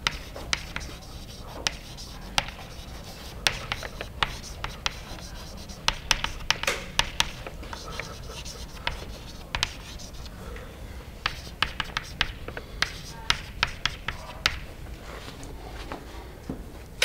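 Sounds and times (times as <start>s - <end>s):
chalk tapping on chalkboard: 0.0s - 10.3s, 11.2s - 14.7s
chalk scratching strokes: 0.0s - 10.4s, 11.2s - 14.7s.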